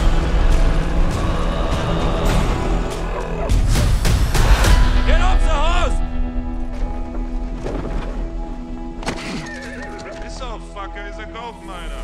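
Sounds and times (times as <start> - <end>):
trailer music: 0.0 - 12.0
horse whinnying: 9.2 - 10.1.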